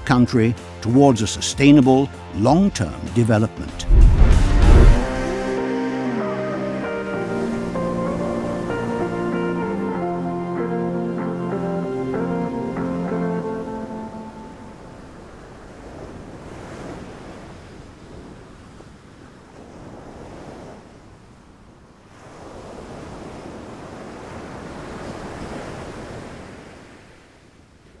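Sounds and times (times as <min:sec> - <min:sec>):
ocean waves washing in: 0:03.7 - 0:05.6, 0:13.6 - 0:21.2, 0:22.0 - 0:27.7.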